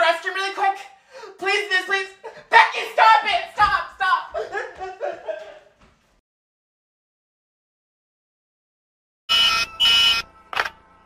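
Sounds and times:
harsh electronic buzzes: 0:09.3 - 0:10.8.

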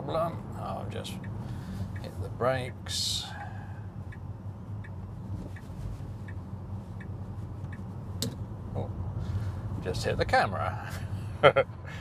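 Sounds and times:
turn signal ticking: 0:00.0 - 0:10.7
low road rumble: 0:00.0 - 0:12.0.

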